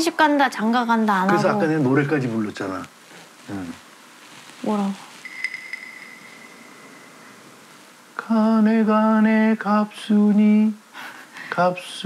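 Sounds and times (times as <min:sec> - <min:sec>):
faint pings: 0:05.2 - 0:07.4
thin high-pitched tone: 0:05.2 - 0:07.4.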